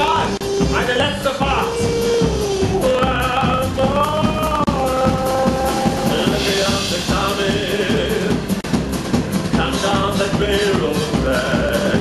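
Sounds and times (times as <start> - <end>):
drum kit steady beat: 0.0 - 12.0
live country band playing: 0.0 - 12.0.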